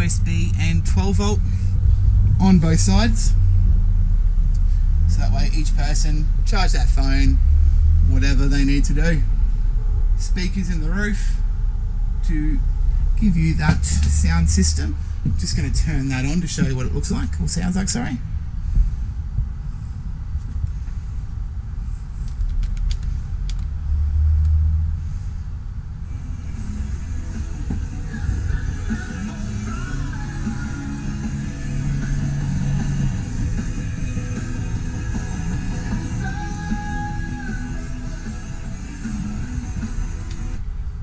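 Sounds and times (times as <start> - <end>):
bass-heavy music from speakers: 0.0 - 18.1, 26.1 - 41.0.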